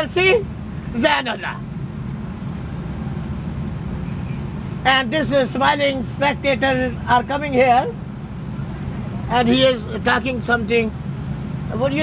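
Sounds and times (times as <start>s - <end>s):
man talking: 0.0s - 1.7s, 4.8s - 8.0s, 9.3s - 11.0s, 11.7s - 12.0s.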